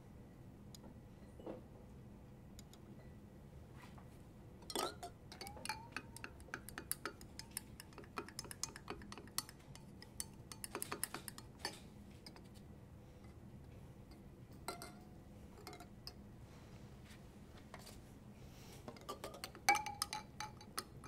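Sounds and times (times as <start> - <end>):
glass rod clinking in beaker: 4.6 - 12.5, 14.1 - 16.2, 19.0 - 21.0.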